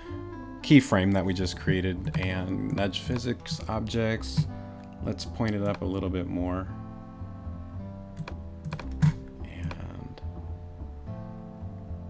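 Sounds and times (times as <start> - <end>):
computer mouse clicks: 2.0 - 2.4, 5.4 - 5.8, 8.2 - 9.9.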